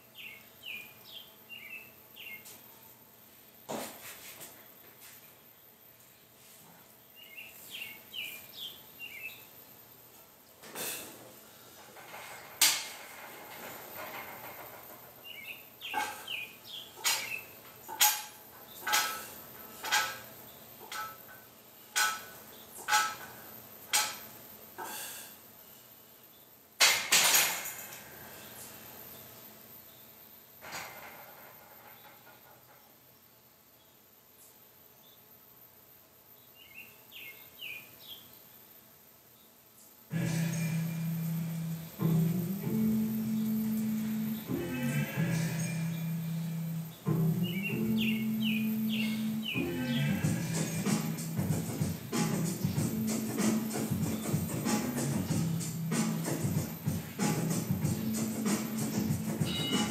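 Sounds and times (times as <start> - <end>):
barbell plates clanking: 11.8 - 15.3, 15.9 - 16.3, 17.0 - 24.3, 30.6 - 32.9
faint bird chirps: 59.3 - 59.9.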